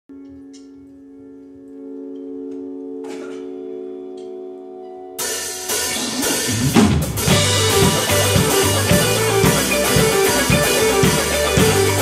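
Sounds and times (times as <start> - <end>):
electric guitar chord ringing: 0.1 - 12.0.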